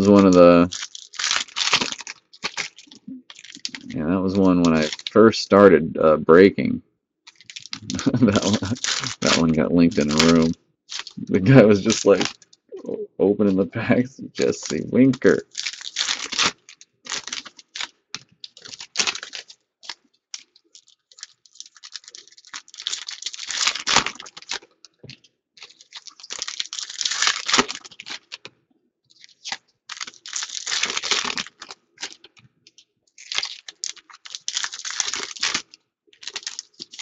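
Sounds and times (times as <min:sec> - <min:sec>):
foil wrappers crinkling and tearing: 0:00.0 - 0:05.2, 0:07.3 - 0:12.6, 0:14.4 - 0:28.5, 0:29.1 - 0:37.0.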